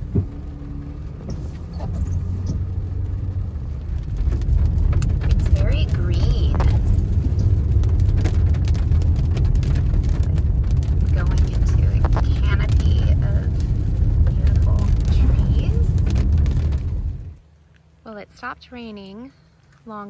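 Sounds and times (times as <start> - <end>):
tyres and engine rumble: 0.0 - 20.0.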